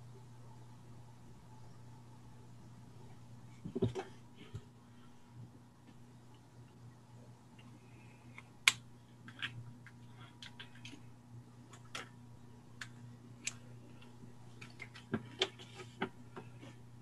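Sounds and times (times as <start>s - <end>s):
faint electrical hum: 0.0s - 17.0s.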